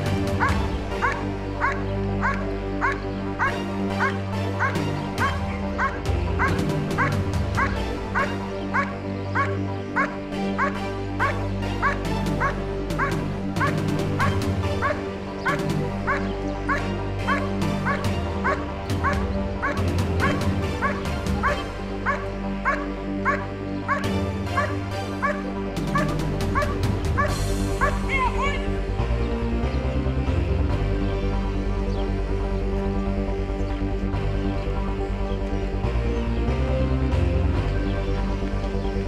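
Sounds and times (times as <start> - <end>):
background music: 0.0 - 39.0
dog barking: 0.4 - 15.0, 16.1 - 28.0.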